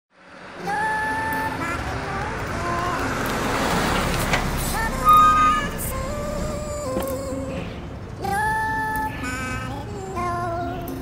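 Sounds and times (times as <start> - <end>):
street traffic noise: 0.1 - 11.0
held tones stepping in pitch: 4.9 - 6.0.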